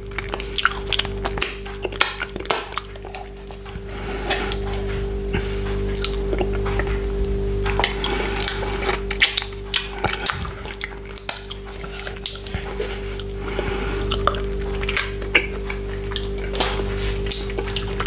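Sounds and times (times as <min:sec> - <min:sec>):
steady low drone: 0:00.0 - 0:15.6
wet finger sucking sounds: 0:03.8 - 0:04.7, 0:07.8 - 0:09.0, 0:13.2 - 0:14.2.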